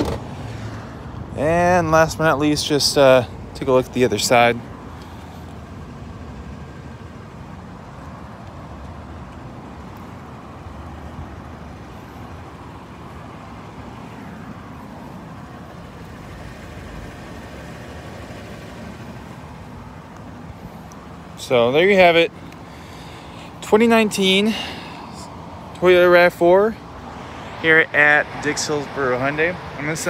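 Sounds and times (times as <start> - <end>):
traffic rumble: 0.0 - 30.0.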